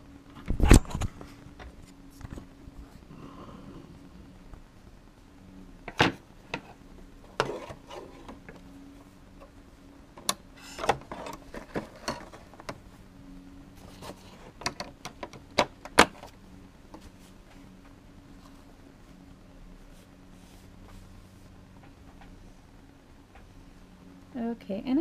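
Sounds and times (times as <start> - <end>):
plastic scraping: 5.9 - 8.6, 10.2 - 12.8.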